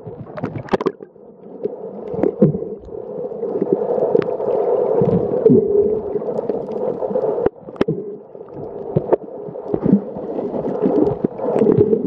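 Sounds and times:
bubbles: 0.0s - 12.0s
muffled underwater splashes: 0.0s - 12.0s.

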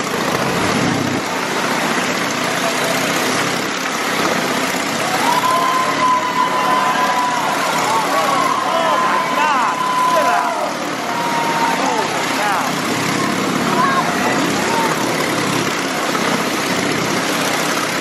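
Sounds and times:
motorcycle engine running hard: 0.0s - 18.0s.

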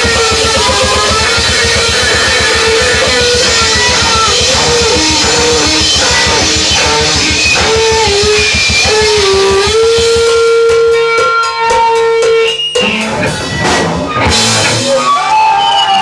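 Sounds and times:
fast drumming: 0.0s - 16.0s
lead guitar with bent notes: 0.0s - 16.0s.

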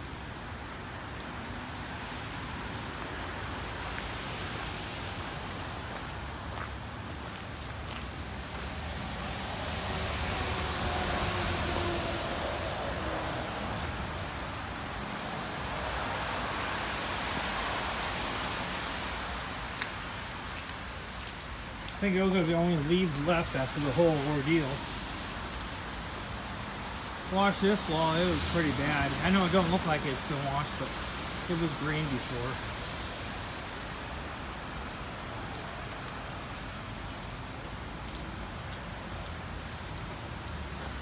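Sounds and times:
heavy rain pouring: 0.0s - 41.0s.

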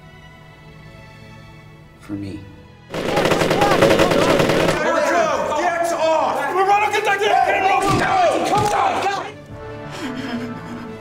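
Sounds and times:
men shouting: 3.0s - 9.4s.

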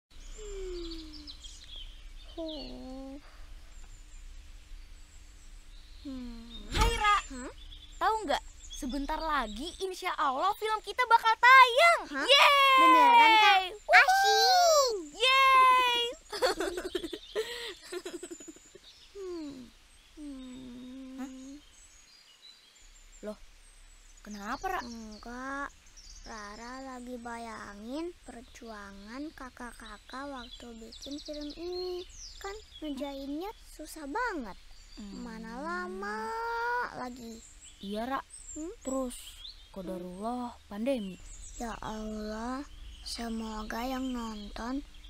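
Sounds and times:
steady low hum: 0.1s - 13.9s
birds chirping: 0.1s - 45.0s
girl humming: 0.4s - 1.4s, 6.0s - 6.7s, 19.2s - 21.6s.

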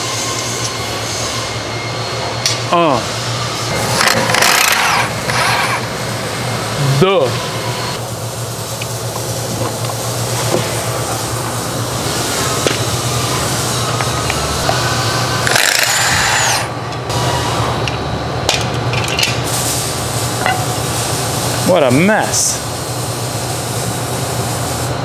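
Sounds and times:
low shop hum: 0.0s - 25.0s
tools clanking on metal: 20.4s - 20.8s.

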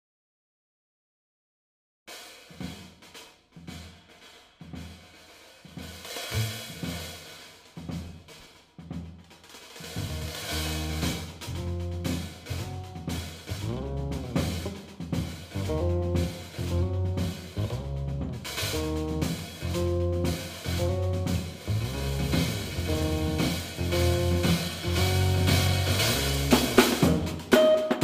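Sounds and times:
bass drum: 6.2s - 7.2s, 9.8s - 27.6s
bass guitar notes: 6.3s - 7.0s, 9.9s - 27.5s
snare drum hits: 6.3s - 7.3s, 18.6s - 28.0s.

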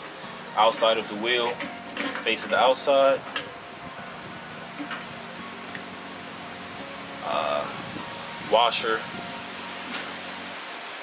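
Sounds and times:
low hum: 0.0s - 10.6s
background hiss: 0.0s - 11.0s.

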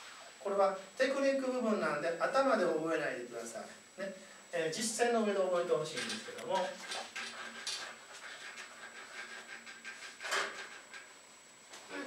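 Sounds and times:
eraser rubbing on whiteboard: 6.1s - 11.0s.

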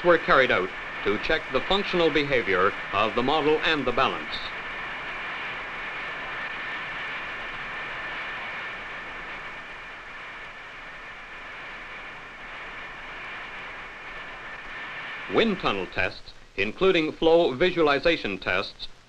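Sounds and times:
faint high steady tones: 0.0s - 19.0s
steady rushing hiss: 0.0s - 19.0s.

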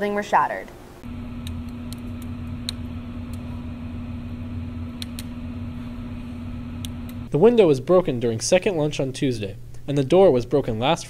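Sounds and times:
mechanical hum: 0.0s - 11.0s
low rumble: 1.0s - 7.3s.

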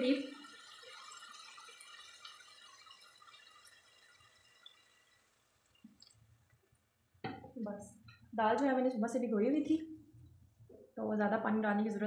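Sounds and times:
water pouring into pot: 0.0s - 6.2s.

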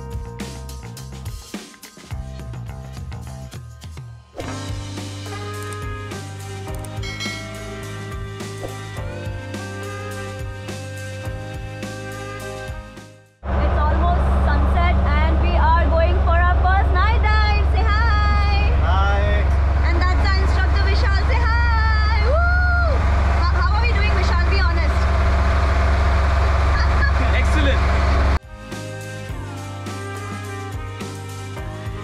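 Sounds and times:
boat engine rumbling: 13.4s - 28.4s.

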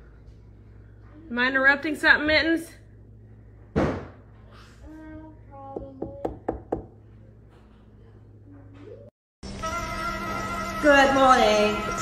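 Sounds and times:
low steady hum: 0.0s - 9.1s.

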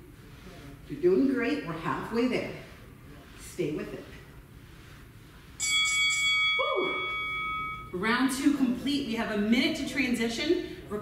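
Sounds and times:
bell-like timer chime: 5.6s - 8.0s.

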